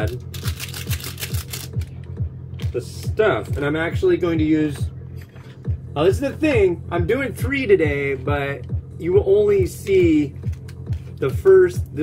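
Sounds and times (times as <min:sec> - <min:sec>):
plastic packet crackling: 0:00.0 - 0:01.9
background music with low beat: 0:00.0 - 0:12.0.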